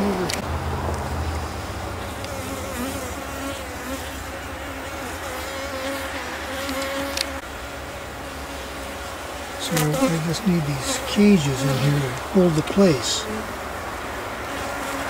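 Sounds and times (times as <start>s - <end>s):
honey bees buzzing: 0.0s - 15.0s.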